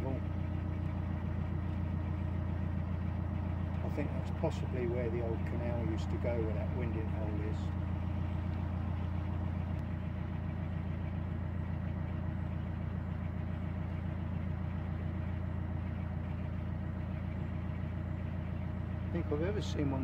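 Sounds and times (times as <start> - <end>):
boat diesel engine running: 0.0 - 20.0.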